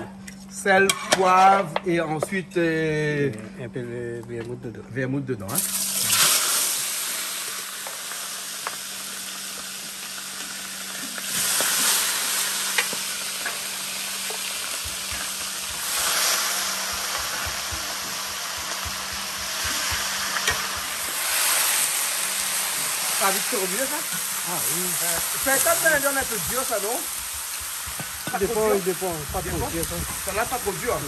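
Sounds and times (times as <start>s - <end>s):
meat sizzling in a pot: 5.5s - 31.0s.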